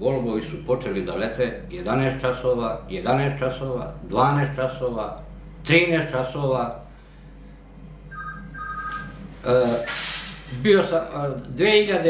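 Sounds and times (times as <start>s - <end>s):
low hum: 0.0s - 9.8s
high electronic beeping tones: 8.1s - 9.2s.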